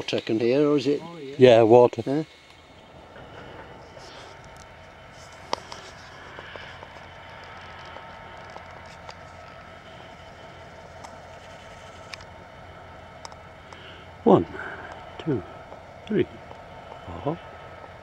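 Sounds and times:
freight train rumbling: 0.0 - 18.0.

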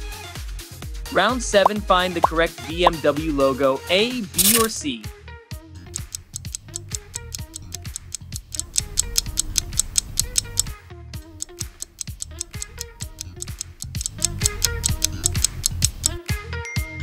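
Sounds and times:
countdown timer music: 5.8 - 16.2
rapid ticking: 5.9 - 10.7, 11.3 - 16.2.

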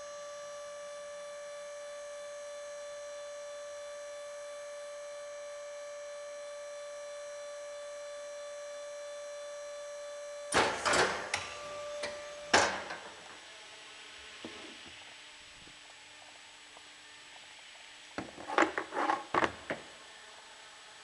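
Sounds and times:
machine high-pitched whine: 0.0 - 18.5.

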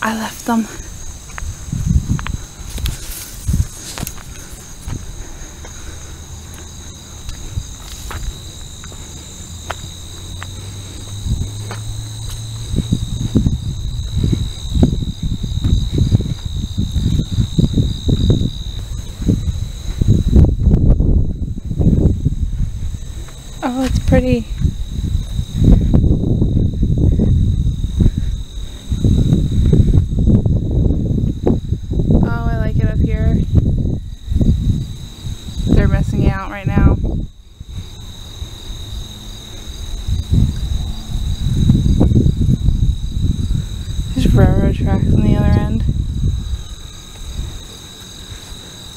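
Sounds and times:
insects trilling: 0.0 - 48.9
wind on microphone: 0.0 - 48.9
footsteps through tall grass: 0.2 - 31.6, 45.9 - 48.9.

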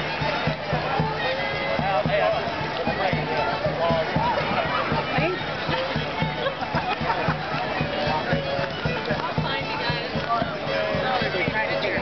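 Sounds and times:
crowd chatter: 0.0 - 12.0
live folk dance music: 0.0 - 12.0.

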